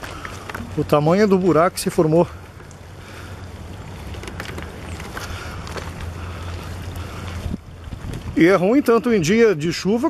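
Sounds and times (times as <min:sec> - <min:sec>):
footsteps on gravel: 0:00.0 - 0:08.6
wind buffeting microphone: 0:02.3 - 0:09.3.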